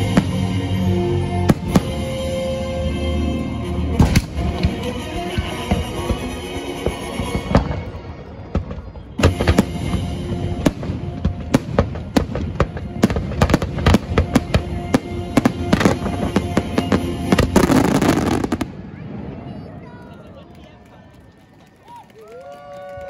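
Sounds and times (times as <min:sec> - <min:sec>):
fireworks crackling: 0:03.8 - 0:22.7.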